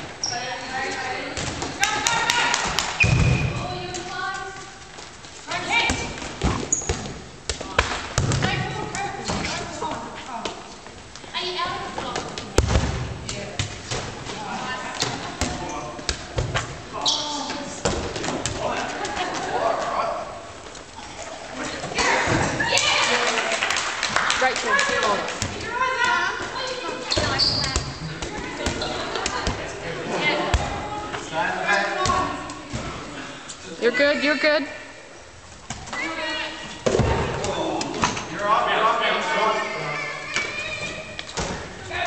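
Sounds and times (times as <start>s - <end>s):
sharp ball impacts: 1.3s - 4.1s, 12.0s - 14.3s
balls bouncing on wooden floor: 1.3s - 11.0s, 24.4s - 29.8s.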